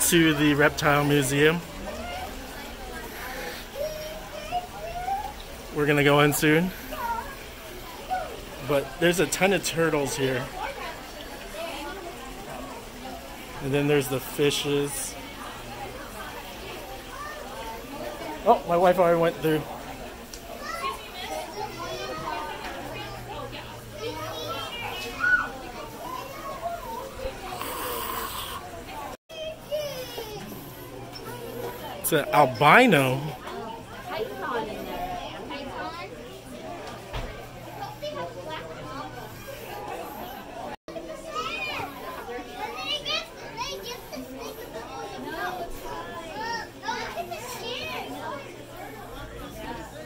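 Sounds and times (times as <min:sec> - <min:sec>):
chatter of children and adults: 0:00.0 - 0:50.0.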